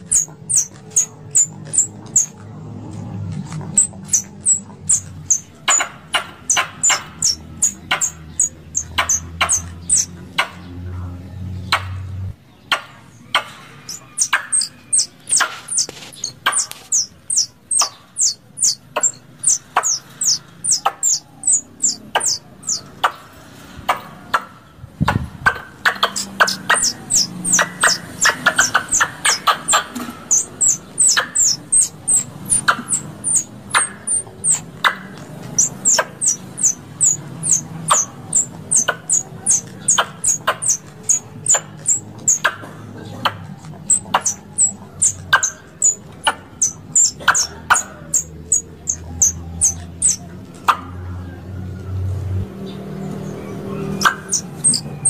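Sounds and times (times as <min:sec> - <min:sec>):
squirrel high-pitched chips: 0:00.0 - 0:02.4, 0:03.7 - 0:10.1, 0:13.8 - 0:23.0, 0:25.9 - 0:42.6, 0:43.3 - 0:50.3, 0:53.8 - 0:55.0.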